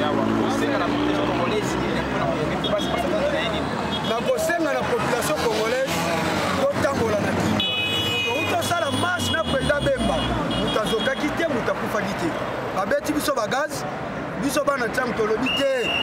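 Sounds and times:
man speaking into a microphone: 0:00.0 - 0:07.6, 0:08.2 - 0:16.0.

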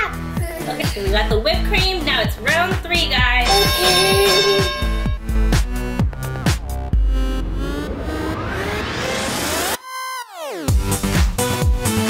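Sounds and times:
electronic background music: 0:00.3 - 0:11.0
held electronic tone: 0:03.5 - 0:05.4.

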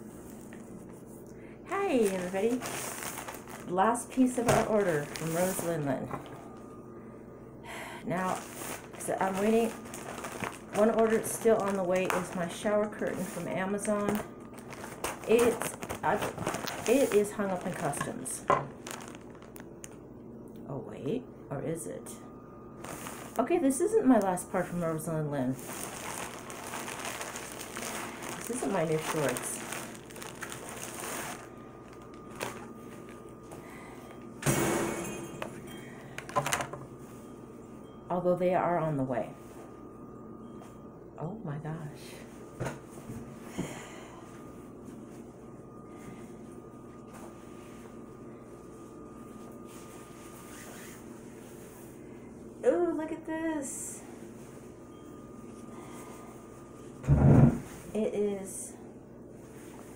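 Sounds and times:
plastic packaging crackling and clattering: 0:01.9 - 0:05.9, 0:08.2 - 0:20.0, 0:25.6 - 0:33.2, 0:36.2 - 0:36.8.

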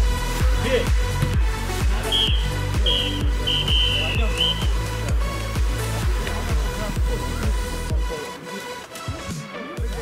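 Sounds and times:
electronic dance music: 0:00.0 - 0:10.0
high whistle-like notes: 0:02.0 - 0:04.8.

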